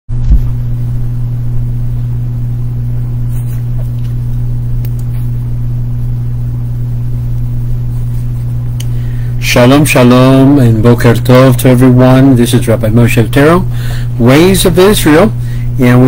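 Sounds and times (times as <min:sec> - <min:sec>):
loud steady low hum: 0:00.1 - 0:16.0.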